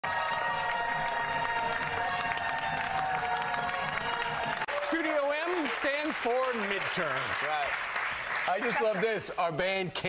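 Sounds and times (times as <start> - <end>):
audience applauding and cheering: 0.0 - 9.7.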